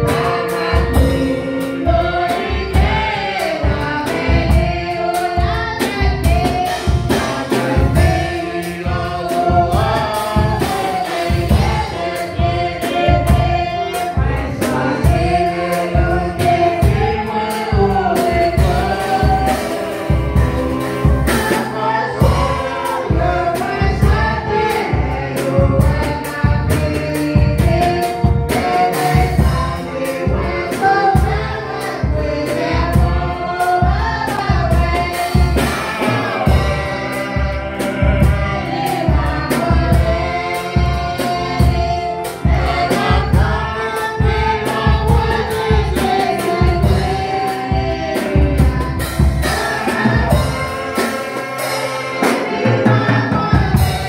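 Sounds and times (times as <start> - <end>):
electronic keyboard chords: 0.0 - 54.0
woman singing gospel song: 0.0 - 54.0.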